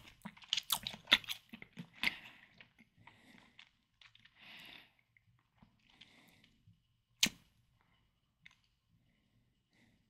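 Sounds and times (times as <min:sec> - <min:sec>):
chewing gummy candy: 0:00.0 - 0:06.6
wet mouth click: 0:07.2 - 0:07.4.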